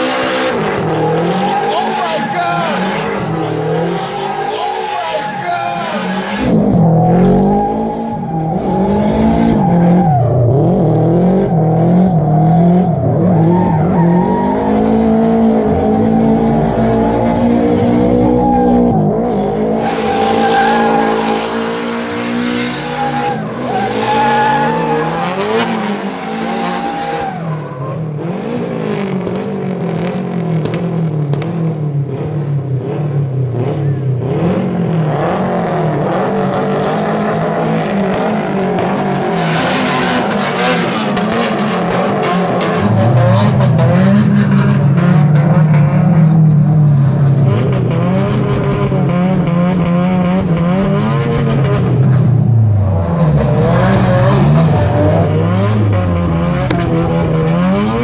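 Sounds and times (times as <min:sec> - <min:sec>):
tyres squealing and skidding: 0:00.0 - 0:10.6, 0:12.4 - 0:17.3, 0:18.0 - 0:28.8, 0:36.0 - 0:45.7
car engines revving: 0:00.0 - 0:58.0.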